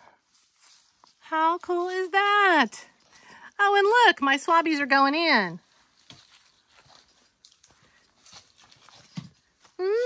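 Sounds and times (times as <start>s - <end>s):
footsteps on rocky leafy ground: 0.2s - 9.8s.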